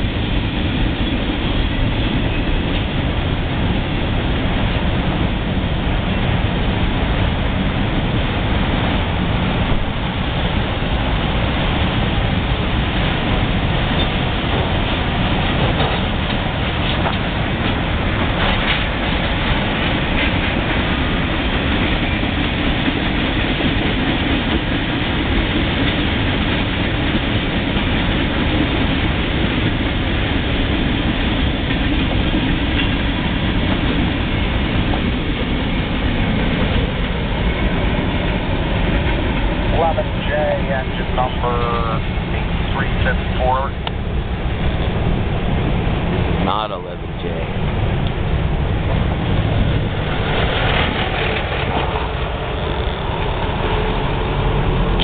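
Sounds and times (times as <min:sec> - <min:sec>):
distant freight cars rolling: 0:00.0 - 0:55.0.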